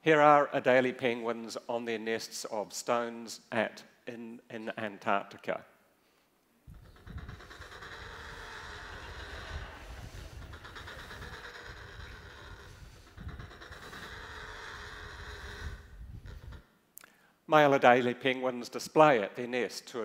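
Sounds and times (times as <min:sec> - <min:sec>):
penguin pulsing display calls: 0:06.7 - 0:16.5.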